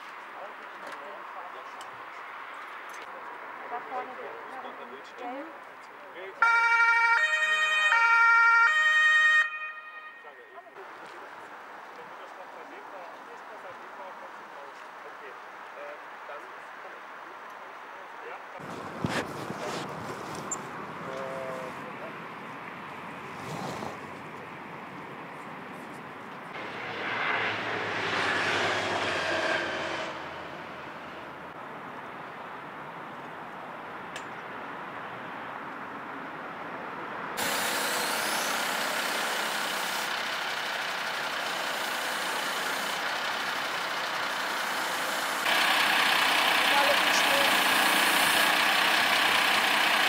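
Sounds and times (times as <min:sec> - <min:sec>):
two-tone emergency siren: 0:06.4 - 0:10.8
vehicle passing by: 0:18.6 - 0:24.7, 0:26.5 - 0:31.9.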